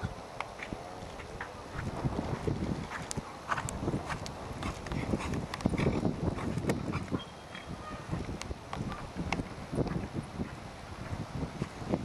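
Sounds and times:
horse hoofbeats: 0:00.6 - 0:11.2.

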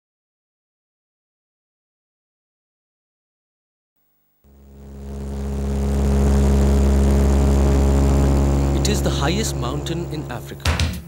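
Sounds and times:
propeller engines droning: 0:04.5 - 0:10.8.

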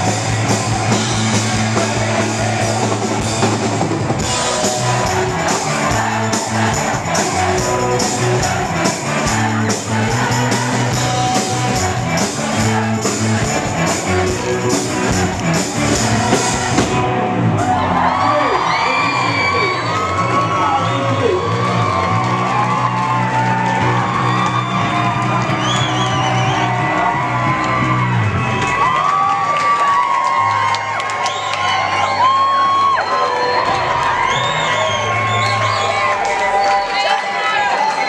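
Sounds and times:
rock band held notes: 0:00.0 - 0:18.1
crowd cheering and whooping: 0:00.0 - 0:38.0.

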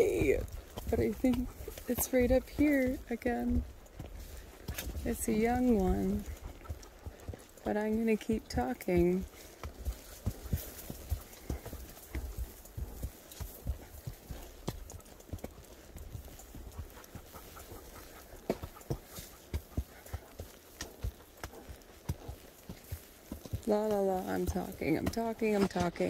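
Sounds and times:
horse hoofbeats walking: 0:00.0 - 0:26.0.

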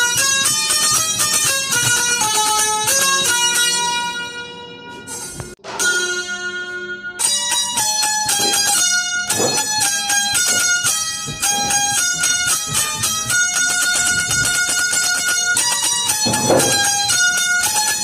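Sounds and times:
banjo playing a plucked melody: 0:00.0 - 0:06.4, 0:07.2 - 0:18.0.

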